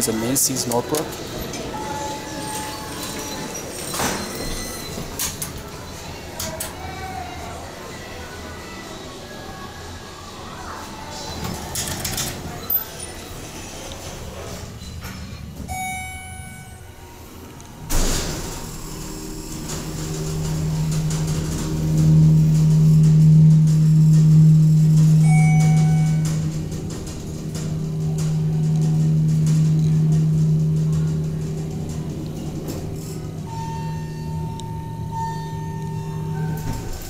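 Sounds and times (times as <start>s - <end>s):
hydraulic elevator hum: 12.3s - 37.0s
short elevator chime: 15.7s - 17.0s, 17.8s - 37.0s
elevator thump: 17.9s - 33.6s.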